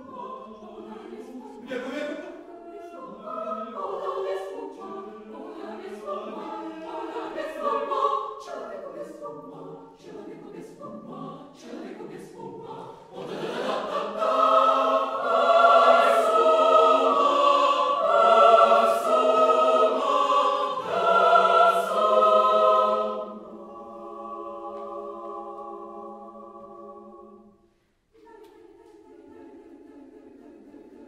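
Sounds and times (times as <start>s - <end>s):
mixed choir singing: 0.0s - 31.0s.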